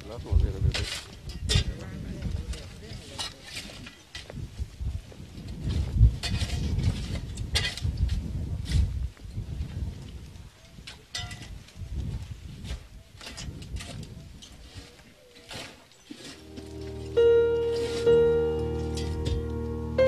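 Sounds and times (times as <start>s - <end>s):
shovels scraping stone rubble: 13.2s - 16.6s.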